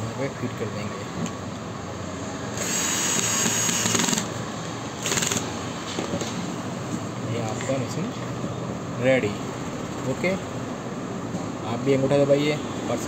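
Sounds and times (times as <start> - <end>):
handheld power tool running: 2.6 - 4.3, 5.0 - 5.5.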